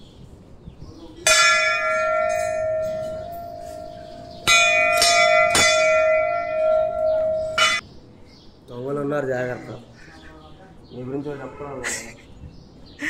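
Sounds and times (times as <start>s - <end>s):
temple bell ringing: 1.2s - 7.8s.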